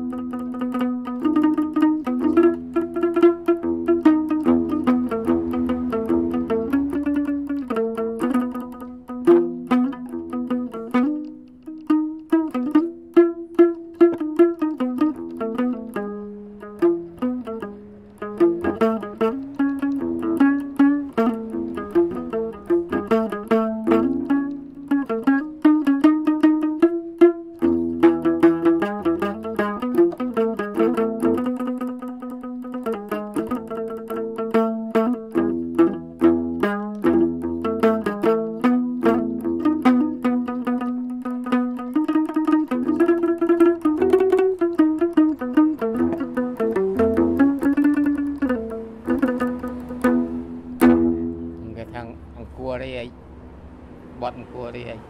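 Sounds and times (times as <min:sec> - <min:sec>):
plucked two-stringed lute melody: 0:00.0 - 0:54.2.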